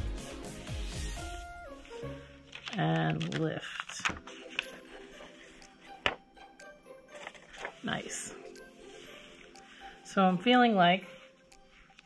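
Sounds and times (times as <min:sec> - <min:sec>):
faint background music: 0:00.0 - 0:12.0
paper and rubber block handled: 0:02.5 - 0:04.8.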